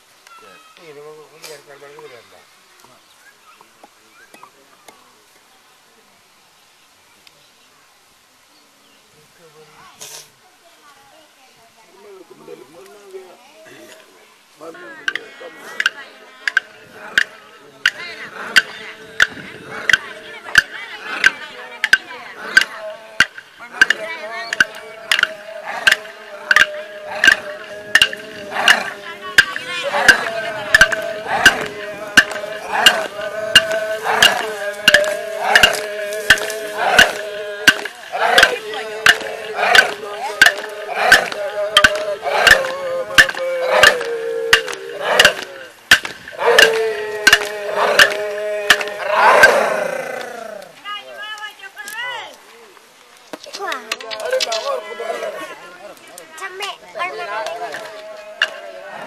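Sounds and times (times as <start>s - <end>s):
men chanting: 14.6s - 51.2s, 53.5s - 59.0s
clapsticks beating: 15.8s - 49.6s, 57.4s - 58.7s.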